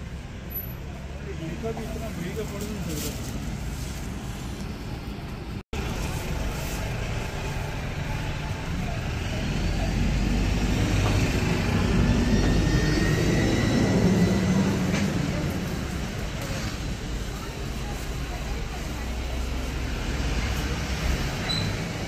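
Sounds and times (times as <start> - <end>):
low engine rumble: 0.0 - 22.0
road traffic: 0.0 - 22.0.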